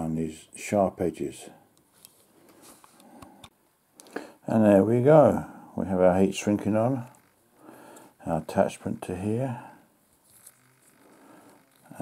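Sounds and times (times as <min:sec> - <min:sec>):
faint rustling of handled parts: 0:01.8 - 0:04.2, 0:09.4 - 0:12.0.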